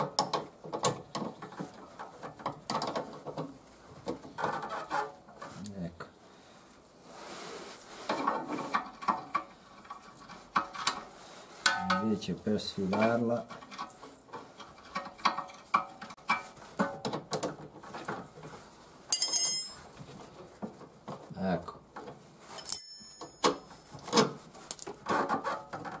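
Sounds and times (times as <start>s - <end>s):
metal spanners clinking: 19.1s - 20.0s, 22.6s - 24.0s.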